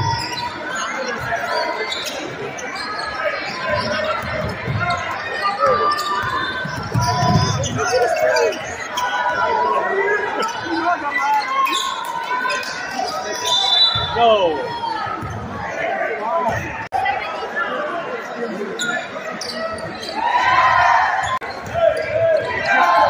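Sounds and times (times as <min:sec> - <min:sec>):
spectators and players talking: 0:00.0 - 0:23.0.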